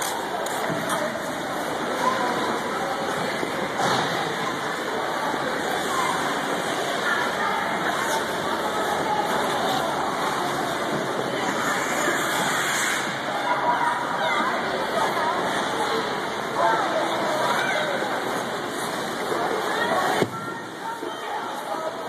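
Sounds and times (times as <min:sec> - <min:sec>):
indistinct echoing voices: 0:00.0 - 0:22.0.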